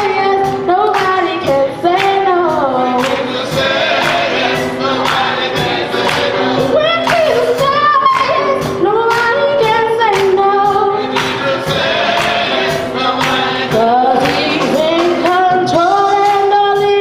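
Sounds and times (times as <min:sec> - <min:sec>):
gospel choir singing: 0:00.0 - 0:17.0
steady beat: 0:00.1 - 0:17.0.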